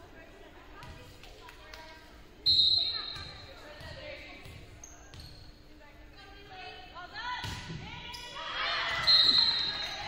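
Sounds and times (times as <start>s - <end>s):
referee's whistle blast: 9.0s - 10.0s.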